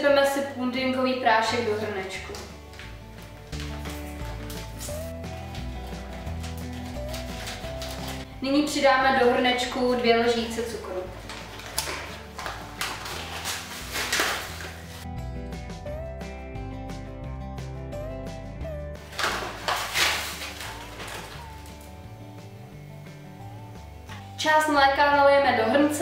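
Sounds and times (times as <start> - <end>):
background music with steady beat: 0.0 - 26.0
paper bag rustling: 2.6 - 8.3, 10.4 - 15.1, 19.0 - 22.0.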